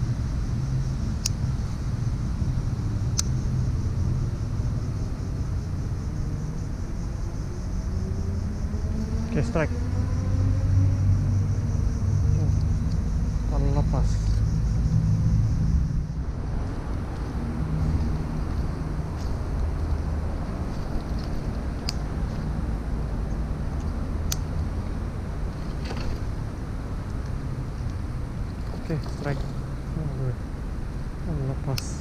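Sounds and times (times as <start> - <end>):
road traffic rumble: 0.0 - 32.0
sharp ticks: 1.1 - 1.5, 3.1 - 3.5, 20.8 - 22.5, 23.2 - 24.6.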